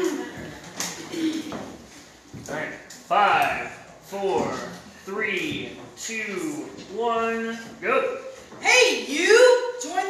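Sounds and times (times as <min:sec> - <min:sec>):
person speaking: 0:02.4 - 0:10.0.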